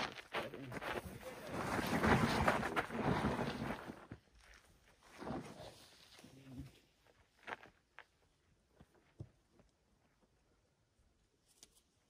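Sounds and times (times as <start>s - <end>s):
crash pad sliding on sandy dirt: 0.0s - 4.2s, 5.0s - 6.1s
footsteps: 0.0s - 6.2s.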